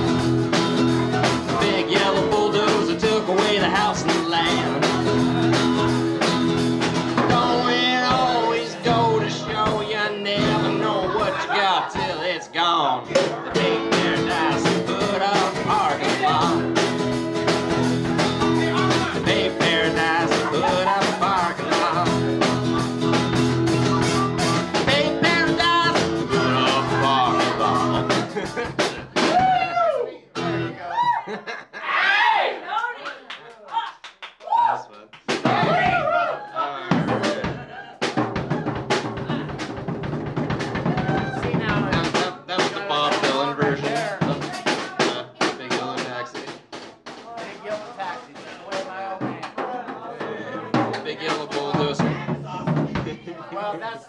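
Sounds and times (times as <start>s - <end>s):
drum kit: 0.0s - 12.2s, 13.0s - 29.8s, 35.2s - 36.2s, 36.8s - 53.2s
acoustic guitar strumming: 0.0s - 12.3s, 13.0s - 29.3s, 30.4s - 30.8s, 40.4s - 46.3s
man singing: 1.2s - 5.9s, 7.2s - 17.0s, 17.8s - 23.2s, 23.8s - 28.6s, 41.4s - 46.5s
person laughing: 20.2s - 21.8s, 26.9s - 29.0s, 31.0s - 32.1s.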